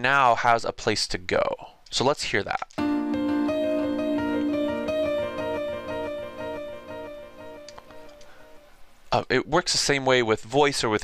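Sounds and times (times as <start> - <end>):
echoing piano sample: 2.8 - 8.7.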